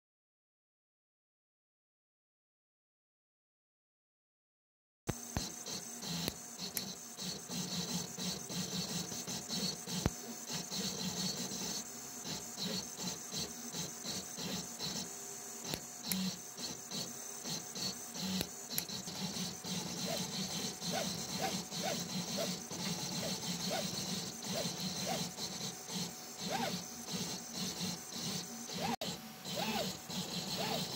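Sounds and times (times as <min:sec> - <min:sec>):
cooling fans whirring: 0:05.1 - 0:30.9
stepper motors whirring: 0:05.1 - 0:30.9.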